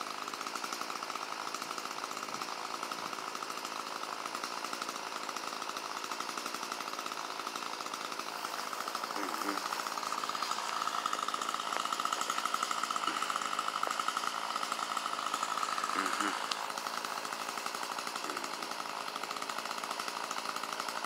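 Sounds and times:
small engine buzzing: 0:00.0 - 0:21.0.

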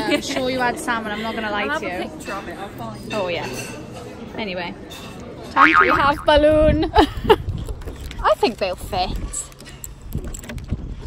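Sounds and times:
wind buffeting microphone: 0:06.0 - 0:09.3.

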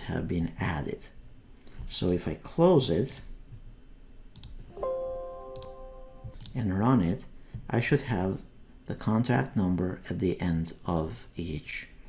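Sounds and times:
computer mouse clicks: 0:04.3 - 0:04.6, 0:06.3 - 0:06.6
system alert chime: 0:04.7 - 0:06.4.

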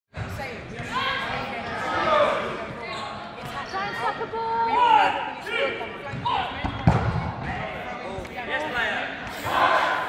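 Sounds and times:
players shouting: 0:09.3 - 0:10.0.

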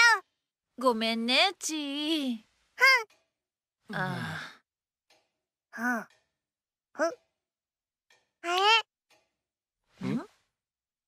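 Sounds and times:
breathy sigh: 0:03.9 - 0:04.6.

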